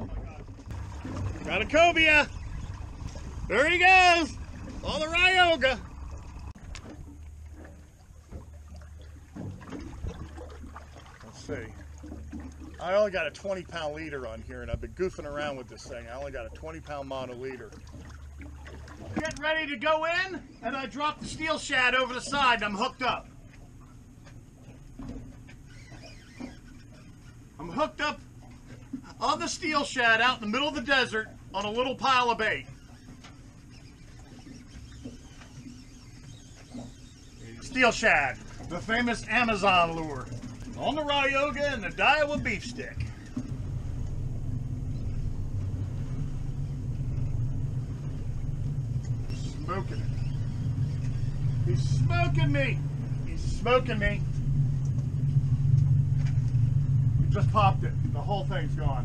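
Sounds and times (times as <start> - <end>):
wind rumble on microphone: 0.0 - 12.8, 14.4 - 16.9
low rumble of wind: 0.0 - 59.0
water against boat hull: 0.0 - 59.0
fishing reel whirring and clicking: 32.6 - 38.8.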